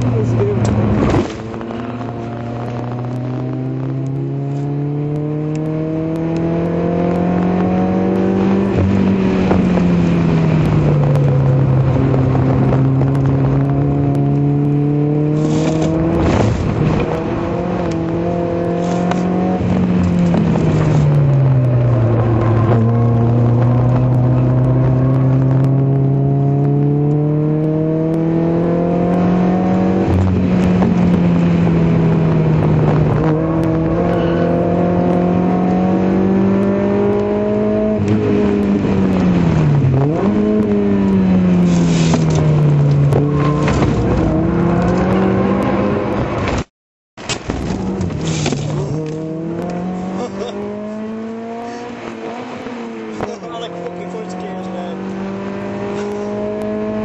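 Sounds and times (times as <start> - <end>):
car engine accelerating hard: 0.0 - 46.7, 47.5 - 57.0.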